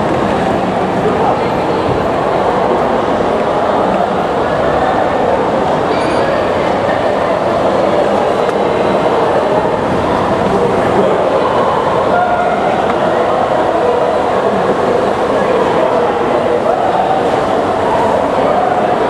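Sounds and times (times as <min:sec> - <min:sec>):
city noise: 0:00.0 - 0:19.0
murmur of voices: 0:00.0 - 0:19.0.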